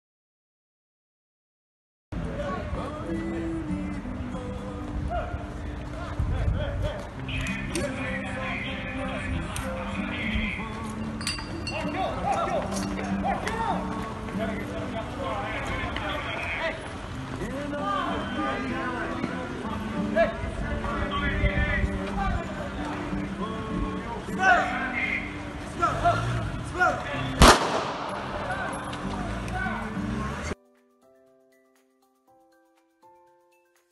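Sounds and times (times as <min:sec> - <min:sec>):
distant raised voices: 0:02.2 - 0:30.6
traffic hum: 0:02.2 - 0:30.6
metallic clink: 0:11.0 - 0:13.2
shouted calls: 0:11.7 - 0:19.1, 0:24.1 - 0:27.4
pistol shot with echo: 0:27.4 - 0:28.4.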